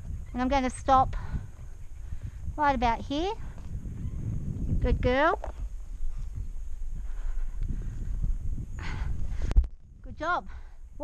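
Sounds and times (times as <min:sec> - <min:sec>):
horse and saddle movement: 0:00.0 - 0:10.5.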